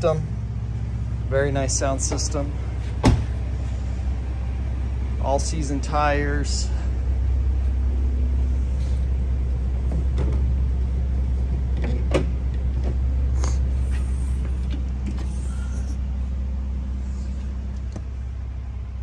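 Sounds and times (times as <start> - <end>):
steady low rumble: 0.0 - 19.0.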